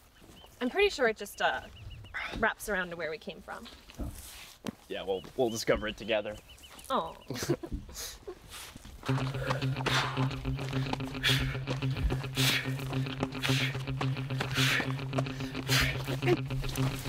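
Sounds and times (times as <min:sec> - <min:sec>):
heavy breathing: 0:07.9 - 0:16.2.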